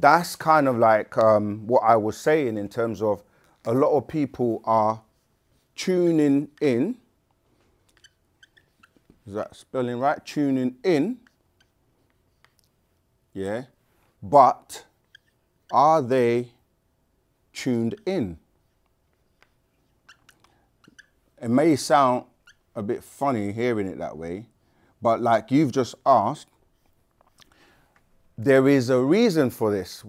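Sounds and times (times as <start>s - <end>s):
marker squeaking on whiteboard: 7.6s - 13.1s, 14.6s - 16.1s, 17.6s - 22.8s, 26.4s - 27.4s.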